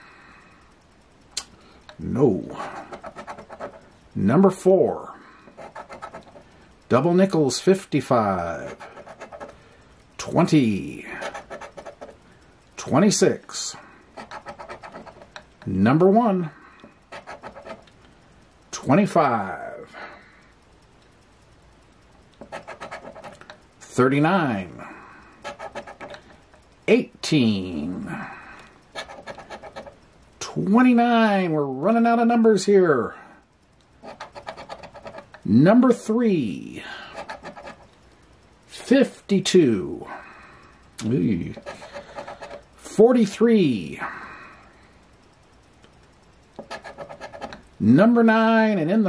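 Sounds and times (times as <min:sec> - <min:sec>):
scraping lottery ticket: 0:02.5 - 0:03.8, 0:05.5 - 0:06.4, 0:08.6 - 0:09.6, 0:11.0 - 0:12.2, 0:14.2 - 0:15.4, 0:17.1 - 0:17.8, 0:22.4 - 0:23.4, 0:25.4 - 0:26.2, 0:28.9 - 0:30.0, 0:34.0 - 0:35.4, 0:37.1 - 0:37.8, 0:41.4 - 0:42.6, 0:46.6 - 0:47.6.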